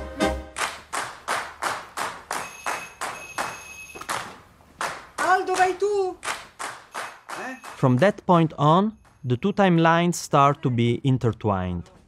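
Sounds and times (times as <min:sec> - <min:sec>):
high ringing: 0:02.3 - 0:04.2
person speaking: 0:05.2 - 0:06.2, 0:07.4 - 0:12.0.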